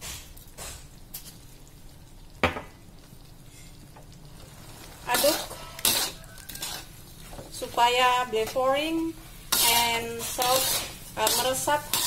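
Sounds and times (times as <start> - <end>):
low sizzle: 0.0 - 12.0
metal spatula stirring in wok: 5.0 - 12.0
metal clack on wok: 10.4 - 12.0.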